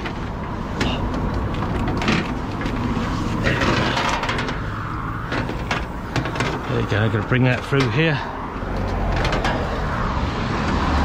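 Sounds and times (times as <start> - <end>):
knocks and rattles of leads: 0.0 - 7.9.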